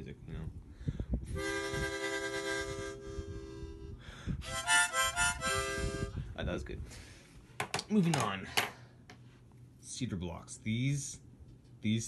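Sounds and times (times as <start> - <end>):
harmonica playing: 1.3 - 6.2
short breath: 4.0 - 4.4.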